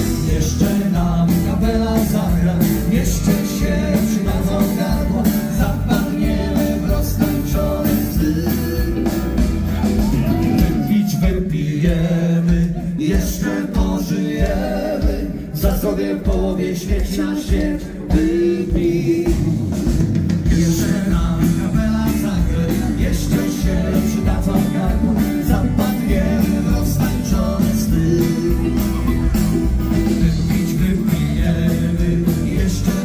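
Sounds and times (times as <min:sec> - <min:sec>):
drum kit beat: 0:00.0 - 0:33.0
guitar: 0:00.0 - 0:33.0
live country band through pa: 0:00.0 - 0:33.0.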